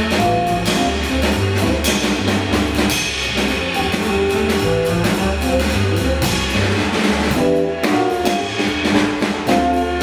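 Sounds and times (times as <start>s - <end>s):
bass notes: 0.0s - 10.0s
drum kit: 0.0s - 10.0s.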